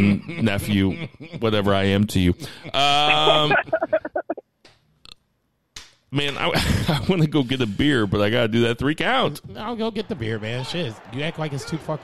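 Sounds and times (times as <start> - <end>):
man's voice: 0.0 - 4.1.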